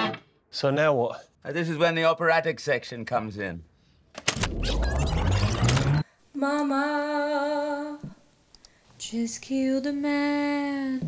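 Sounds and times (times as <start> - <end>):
tape reels whirring: 4.4 - 6.0.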